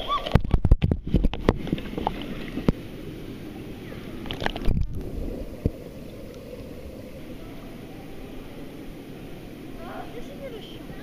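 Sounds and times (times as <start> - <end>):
water splash: 0.0 - 2.8, 4.2 - 5.8
pool water sloshing: 0.0 - 11.0.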